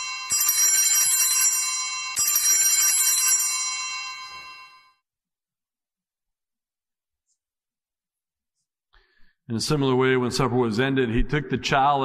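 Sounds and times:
small high bells ringing: 0:00.0 - 0:05.0.

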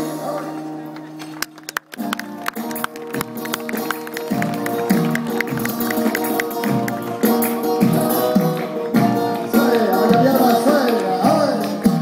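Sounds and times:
sharp percussive clicks: 0:01.4 - 0:07.0
acoustic guitar chords: 0:02.0 - 0:12.0.

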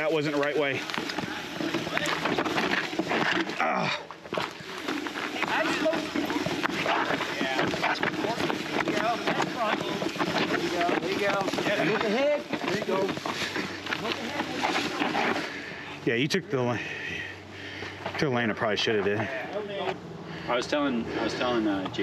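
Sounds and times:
bike clattering and rattling: 0:00.0 - 0:15.7
bike tyres rolling on stone: 0:00.0 - 0:15.9.

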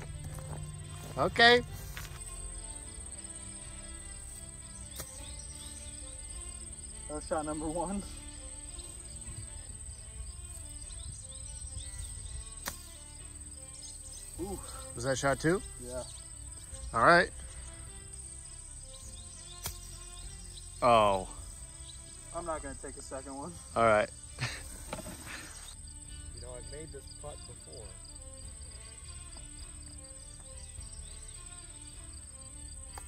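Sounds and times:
golf club striking ball: 0:12.6 - 0:13.0, 0:19.5 - 0:20.0.

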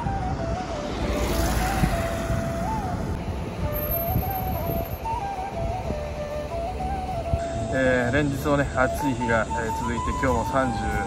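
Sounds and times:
car driving past: 0:00.0 - 0:04.6.

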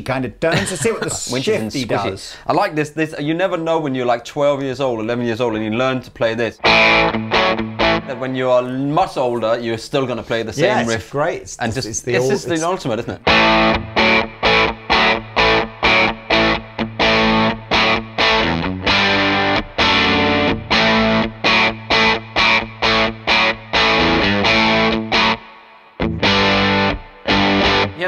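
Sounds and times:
distorted electric guitar chords: 0:06.6 - 0:08.3, 0:13.2 - 0:28.0.

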